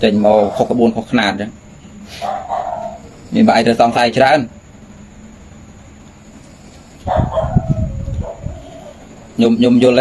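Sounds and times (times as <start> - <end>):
animal call: 2.0 - 3.4, 6.6 - 9.3.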